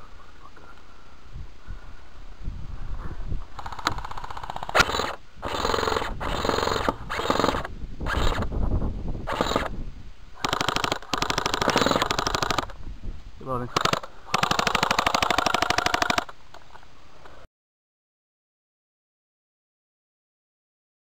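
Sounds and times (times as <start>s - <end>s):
airsoft guns firing full auto: 3.6s - 8.4s, 10.4s - 12.7s, 13.7s - 16.3s.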